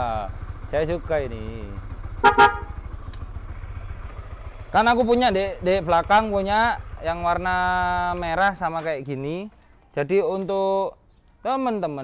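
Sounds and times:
motorcycle engine idling: 0:00.0 - 0:10.1.

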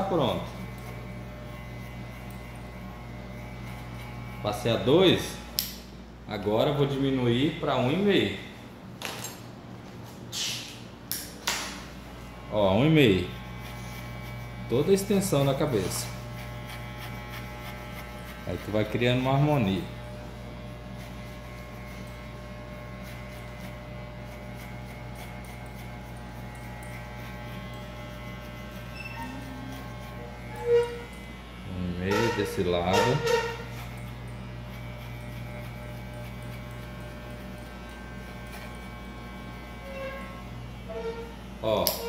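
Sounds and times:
electric hair clipper humming: 0:00.0 - 0:05.9, 0:11.1 - 0:42.0
person speaking: 0:18.4 - 0:20.0, 0:31.6 - 0:33.4.

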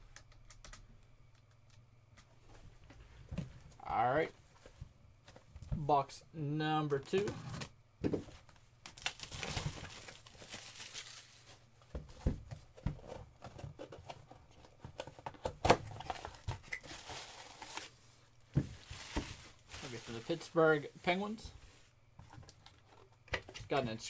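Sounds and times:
plastic shrink-wrap tearing: 0:08.9 - 0:11.4
tissue paper crinkling: 0:09.0 - 0:11.6, 0:18.8 - 0:20.6.

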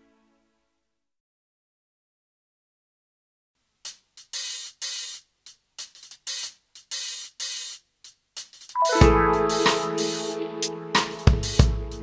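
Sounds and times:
hi-hat and cymbal rhythm: 0:03.7 - 0:12.0.

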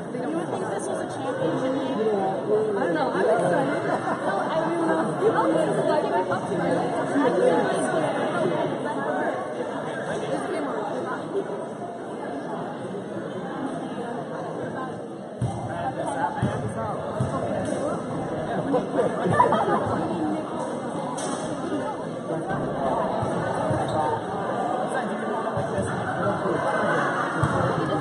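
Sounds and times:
crowd chattering in echoing hall: 0:00.0 - 0:28.0.

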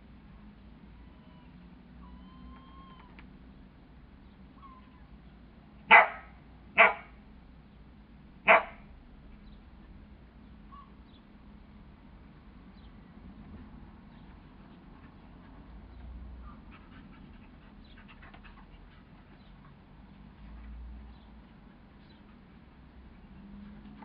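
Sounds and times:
dog barking: 0:05.9 - 0:07.2, 0:08.4 - 0:08.9.

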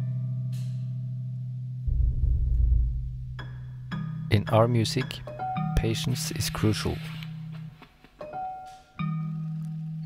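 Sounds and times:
low held tone: 0:01.9 - 0:04.2.

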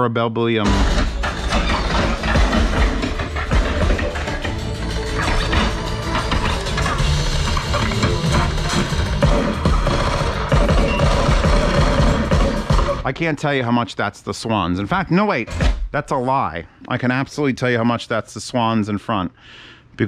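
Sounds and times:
film music with heavy bass: 0:00.6 - 0:13.2.

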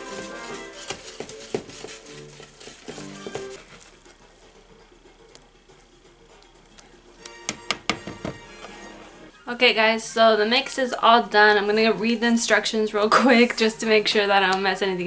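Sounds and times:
whisk scraping mixing bowl: 0:00.0 - 0:06.6
soft background music: 0:00.0 - 0:15.0.

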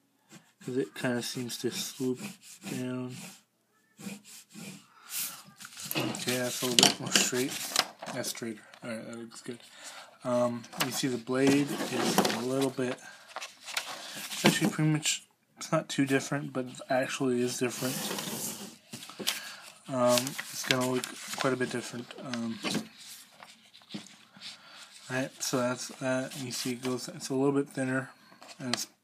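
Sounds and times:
pencil strokes on paper: 0:00.3 - 0:07.6, 0:16.9 - 0:18.8
paper rustling: 0:05.2 - 0:08.9, 0:09.5 - 0:14.8, 0:17.7 - 0:27.1.

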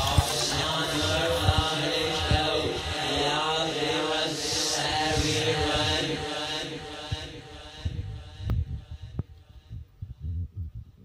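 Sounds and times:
chant-like singing voice: 0:00.0 - 0:09.8.

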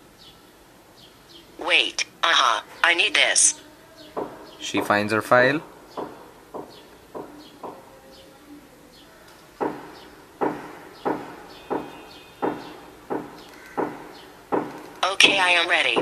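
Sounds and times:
dull knocks: 0:04.2 - 0:07.8, 0:09.6 - 0:16.0.

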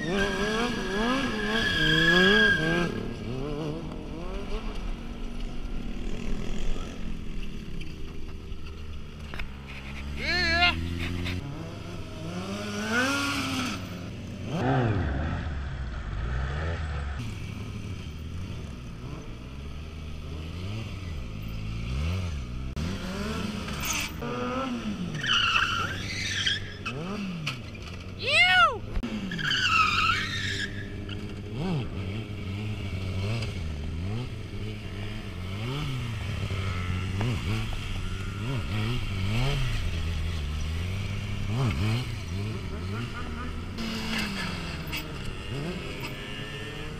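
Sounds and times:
motorcycle engines revving: 0:00.0 - 0:46.9.

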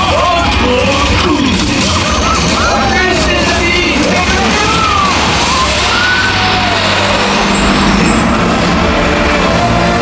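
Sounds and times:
rumbling sound effects: 0:00.0 - 0:10.0
low steady drone: 0:01.8 - 0:10.0.

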